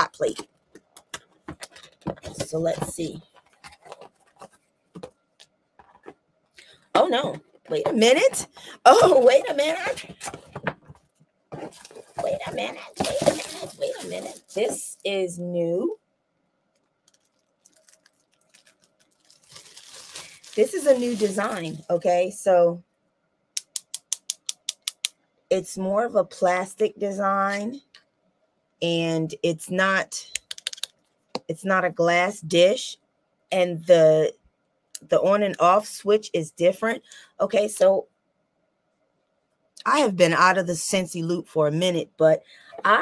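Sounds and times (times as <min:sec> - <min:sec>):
paper packaging rustling: 0:01.3 - 0:05.1, 0:07.3 - 0:14.8, 0:17.0 - 0:21.9.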